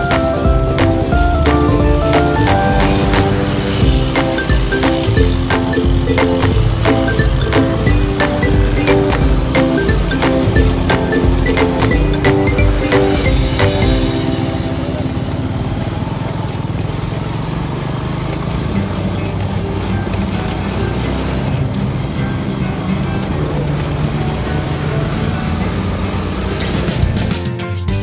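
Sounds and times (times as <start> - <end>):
background music: 0.0 - 15.7, 18.9 - 28.0
road and wind rumble: 0.0 - 27.3
motorcycle engine: 0.0 - 27.4.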